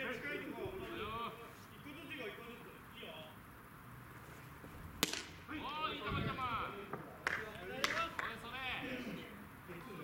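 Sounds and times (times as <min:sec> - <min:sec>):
baseball smacking into mitt: 0:05.0 - 0:05.4.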